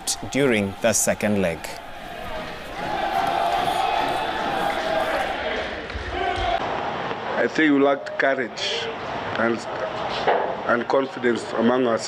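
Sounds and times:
voices calling and shouting: 0.0s - 6.6s.

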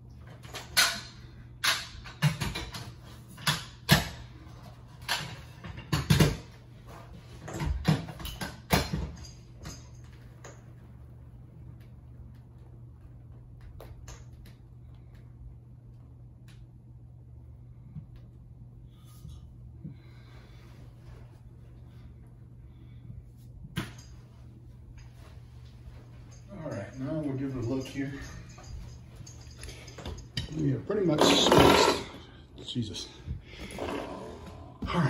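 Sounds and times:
faint steady hum: 0.0s - 35.0s
metal parts clunking: 26.0s - 32.3s.

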